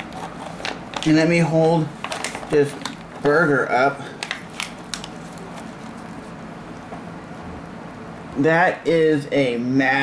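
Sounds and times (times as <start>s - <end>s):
burger wrapper crackles: 0.0s - 6.2s.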